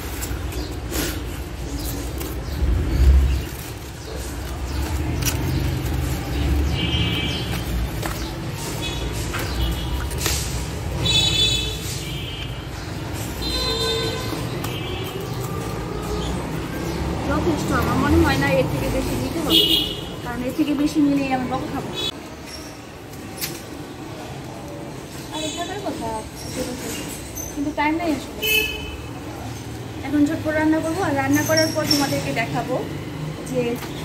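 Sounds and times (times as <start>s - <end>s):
road traffic rumbling: 0.0s - 34.0s.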